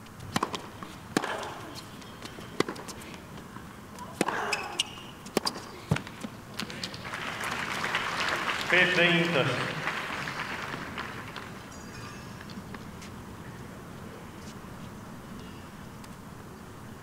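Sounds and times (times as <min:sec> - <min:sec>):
racquet striking tennis ball: 0:00.3 - 0:03.0, 0:04.1 - 0:06.1
tennis ball bouncing: 0:00.3 - 0:07.0
crowd applause: 0:06.7 - 0:11.7.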